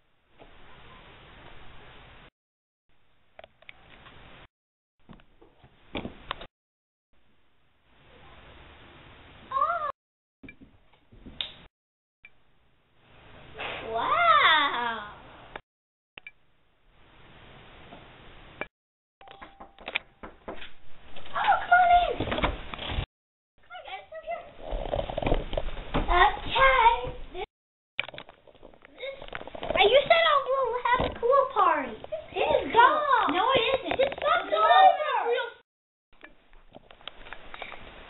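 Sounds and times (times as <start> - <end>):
high child's voice: 9.5 - 10.0, 13.8 - 15.2, 21.3 - 22.2, 23.6 - 24.6, 26.0 - 27.5, 29.8 - 35.6
children's voices: 29.8 - 35.6.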